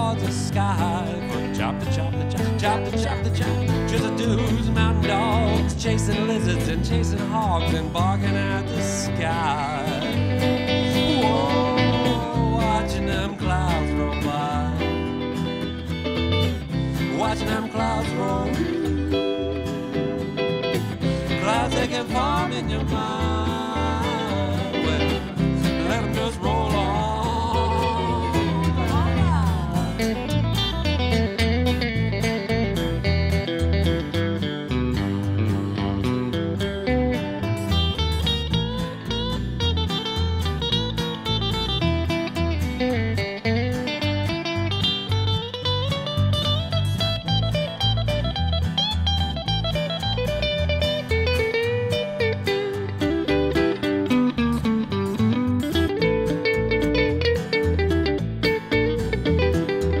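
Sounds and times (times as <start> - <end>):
acoustic guitar: 0.0 - 60.0
bass line: 0.0 - 60.0
electric guitar solo: 9.4 - 60.0.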